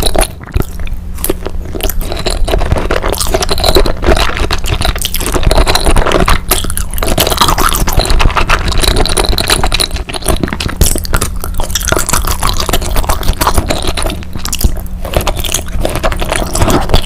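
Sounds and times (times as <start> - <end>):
wet chewing: 0.0 - 17.0.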